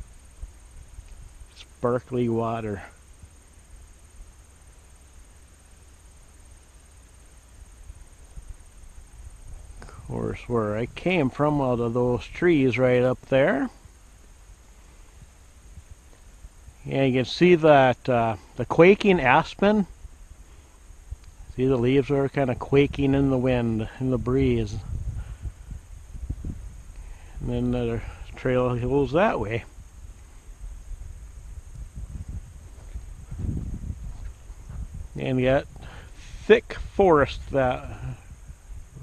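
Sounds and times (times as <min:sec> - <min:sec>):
man speaking: 0:01.6 - 0:03.0, 0:09.9 - 0:13.8, 0:16.8 - 0:19.9, 0:21.6 - 0:24.9, 0:27.4 - 0:29.7, 0:35.2 - 0:38.2
breeze rumbling on microphone: 0:07.6 - 0:39.0.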